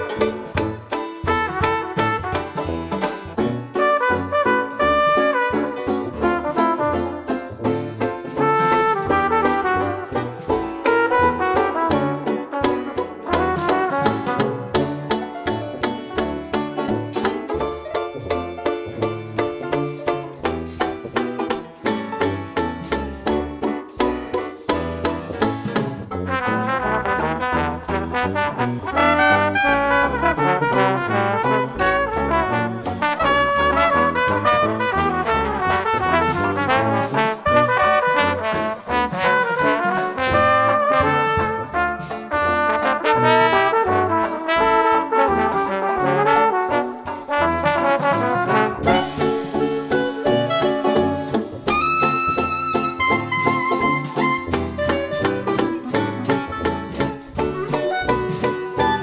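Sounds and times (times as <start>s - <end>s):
bass notes: 0.0s - 59.0s
steady beat: 0.0s - 59.0s
trumpet jazz melody: 0.0s - 59.0s.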